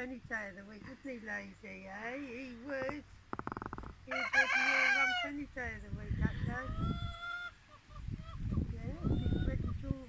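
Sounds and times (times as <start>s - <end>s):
rooster crowing: 4.1s - 5.3s.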